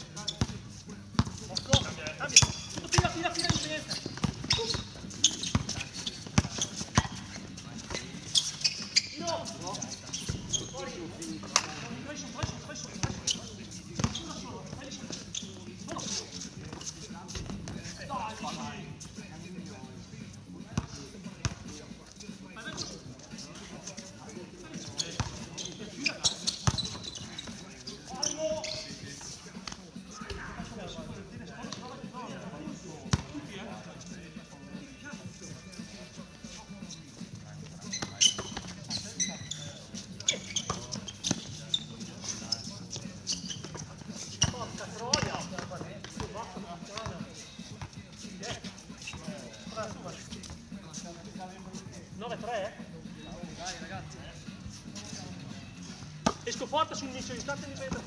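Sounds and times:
players' voices: 0.0 - 58.0
basketball bouncing on hard court: 1.2 - 4.8, 5.5 - 7.2, 26.6 - 26.9.

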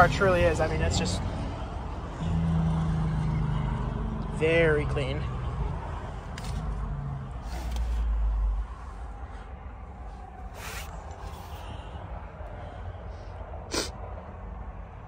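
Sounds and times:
low rumble in car cabin: 3.9 - 15.0.

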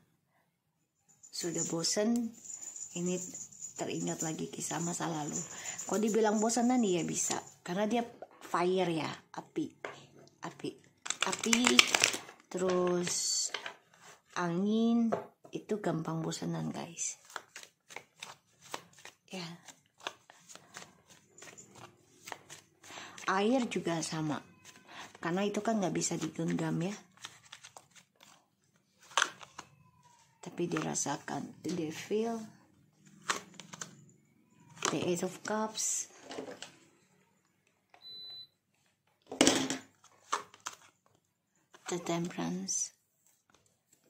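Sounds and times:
cards being shuffled: 17.2 - 22.8, 26.1 - 31.0, 33.0 - 34.0, 40.0 - 41.1.

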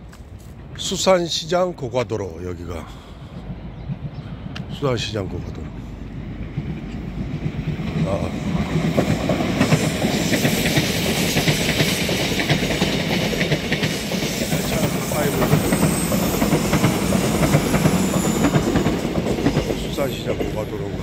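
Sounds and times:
electric train rumble: 0.0 - 21.0
train wheels clicking over rail joints: 0.0 - 21.0.

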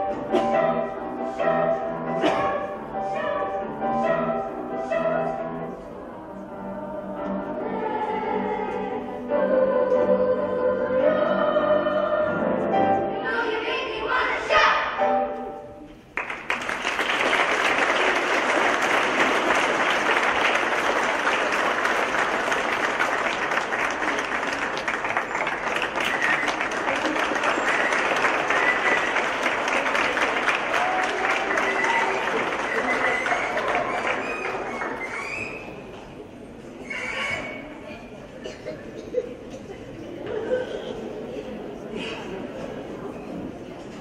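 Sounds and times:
choir singing: 5.0 - 15.2
audience applauding: 16.2 - 35.8
voices in crowd: 17.6 - 44.0.

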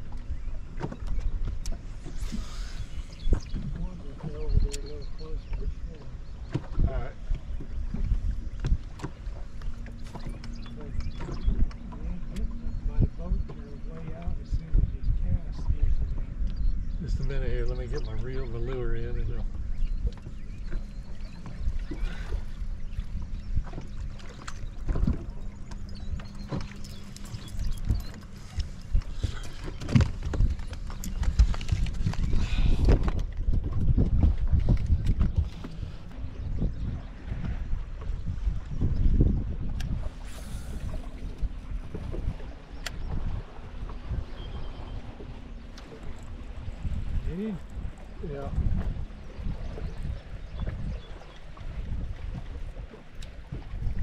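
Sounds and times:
water slapping boat hull: 0.0 - 54.0
wind buffeting microphone: 0.0 - 54.0.

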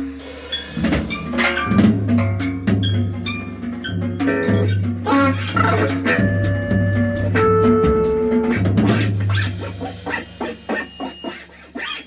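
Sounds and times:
cymbal strokes: 0.0 - 1.8, 9.2 - 12.0
held notes: 0.0 - 12.0
steady bass: 0.5 - 11.6
plucked guitar notes: 0.5 - 12.0.

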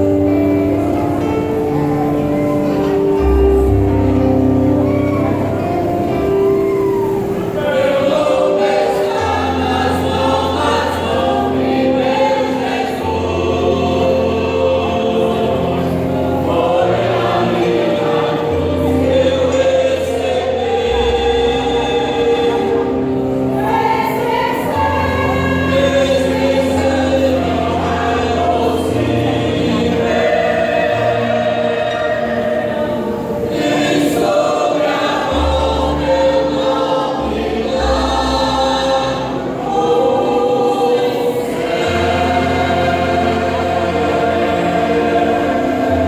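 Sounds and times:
choir singing a hymn: 0.0 - 46.0.

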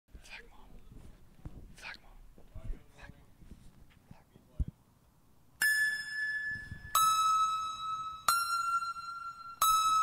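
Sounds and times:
person whispering: 0.2 - 0.8, 1.8 - 2.2.

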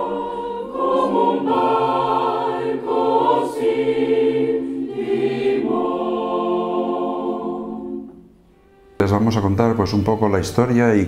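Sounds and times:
mixed choir singing chords: 0.0 - 8.9.

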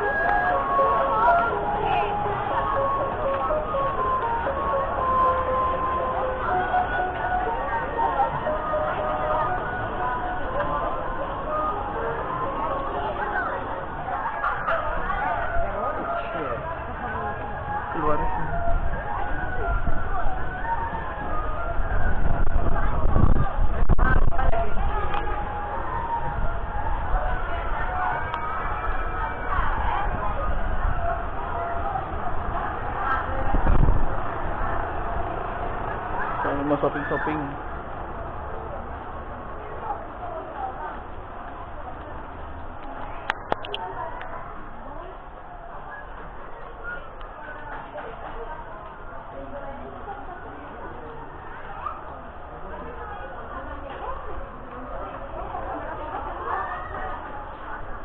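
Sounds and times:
background chatter of people: 0.0 - 58.0
indistinct voices: 0.0 - 58.0
low microphone rumble: 0.0 - 58.0.

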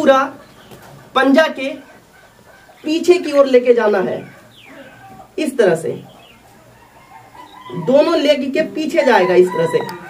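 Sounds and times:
chickens calling: 0.0 - 10.0.

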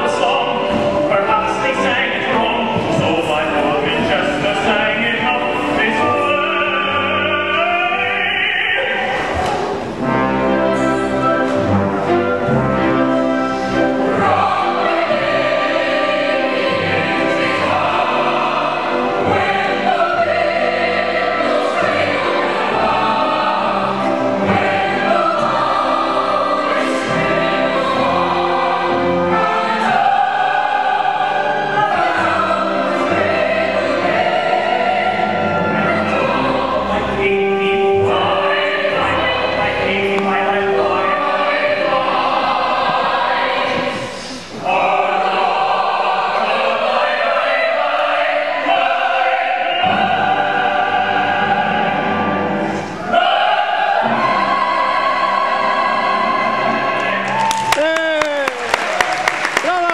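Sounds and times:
orchestra accompaniment: 0.0 - 44.1
chorus singing: 0.0 - 57.9.

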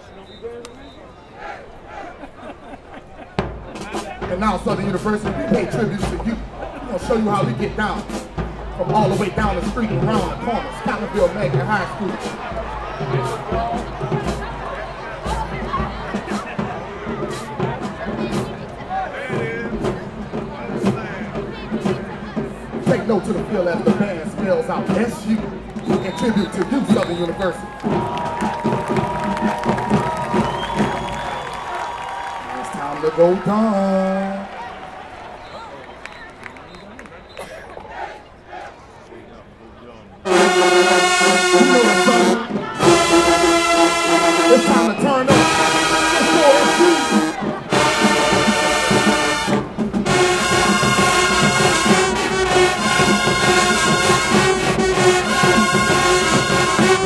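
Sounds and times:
crowd chatter: 0.0 - 57.0
marching band playing: 3.3 - 35.7, 40.2 - 57.0
marching band brass chord: 40.3 - 57.0.

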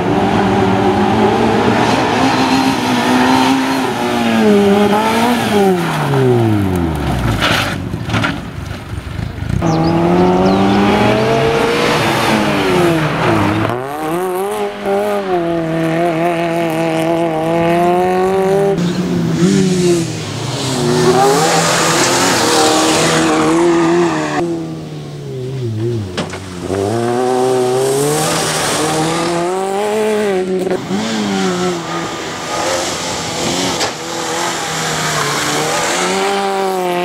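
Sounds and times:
rally car engine revving: 0.0 - 37.0.

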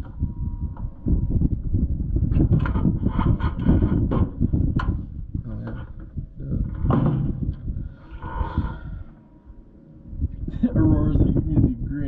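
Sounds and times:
chassis knocking and rattling: 2.3 - 7.8.

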